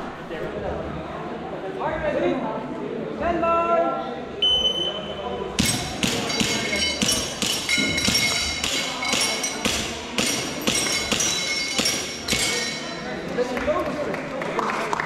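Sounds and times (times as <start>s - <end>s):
metal target ping: 5.6s - 13.0s.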